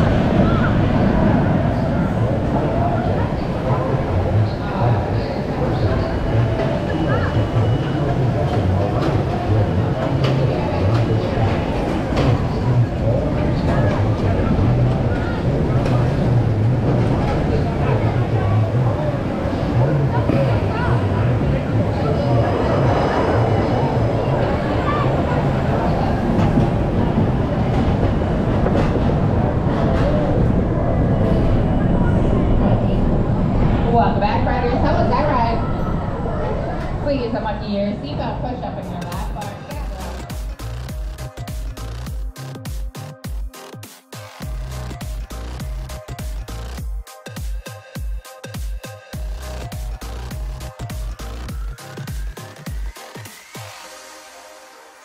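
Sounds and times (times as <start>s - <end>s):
roller coaster low rumble: 0.0s - 42.2s.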